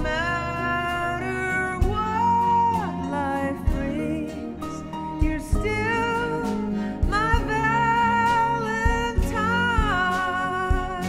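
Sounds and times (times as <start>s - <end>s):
slow string ballad: 0.0s - 11.0s
soft low drum hit: 5.2s - 6.1s.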